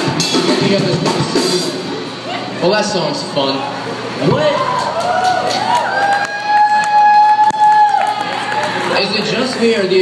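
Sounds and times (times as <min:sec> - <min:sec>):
crowd whooping and cheering: 0:04.0 - 0:10.0.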